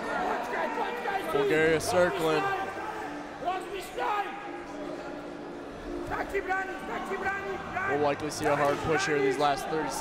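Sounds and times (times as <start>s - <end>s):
indistinct voices in a hall: 0.0s - 10.0s.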